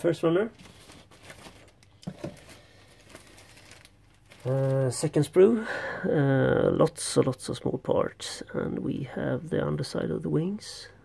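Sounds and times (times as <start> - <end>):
plastic sprues rustling: 0.5 - 5.4.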